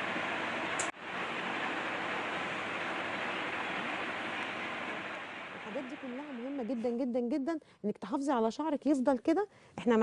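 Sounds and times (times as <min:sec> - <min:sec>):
steady rushing hiss: 0:00.0 - 0:07.0.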